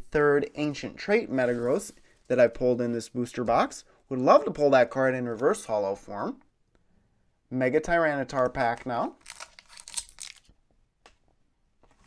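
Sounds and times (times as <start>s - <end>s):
foil wrapper crinkling: 9.2s - 10.5s.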